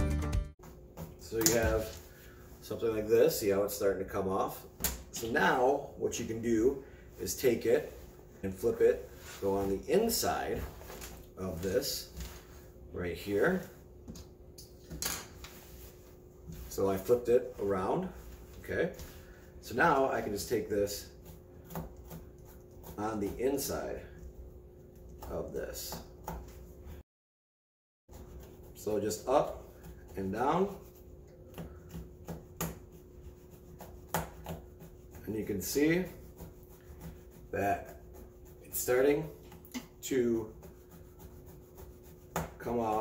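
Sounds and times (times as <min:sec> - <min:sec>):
razor scratching fabric: 0:28.1 - 0:43.0.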